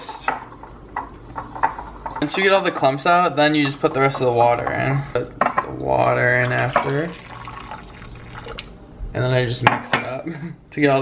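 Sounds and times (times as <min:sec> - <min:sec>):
water pouring into bowl: 0:06.2 - 0:08.8.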